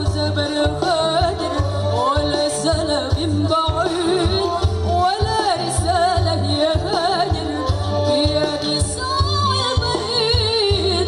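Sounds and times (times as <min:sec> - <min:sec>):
amplified band accompaniment: 0:00.0 - 0:11.0
woman singing into microphone: 0:00.0 - 0:11.0.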